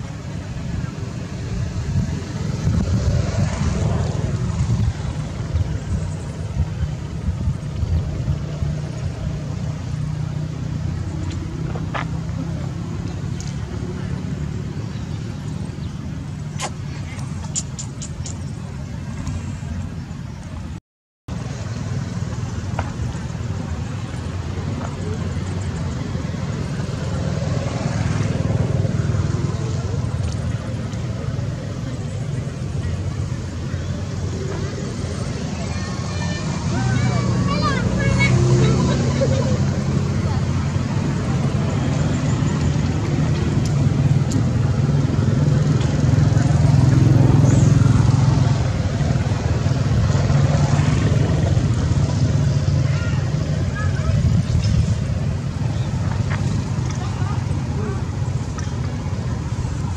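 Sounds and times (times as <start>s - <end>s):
wind on microphone: 0.0s - 14.0s, 53.5s - 59.9s
faint indistinct voices: 22.9s - 59.9s.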